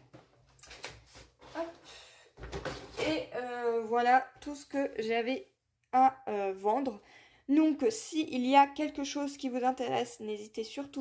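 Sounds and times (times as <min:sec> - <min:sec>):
box of markers knocking and rustling: 0:02.4 - 0:03.0.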